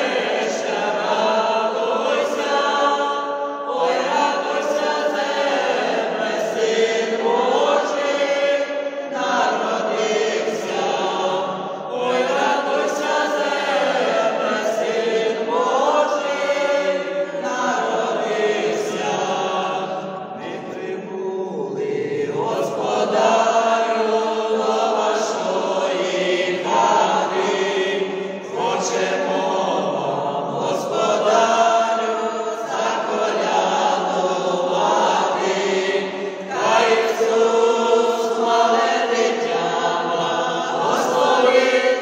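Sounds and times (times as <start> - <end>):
choir singing unaccompanied: 0.0 - 42.0.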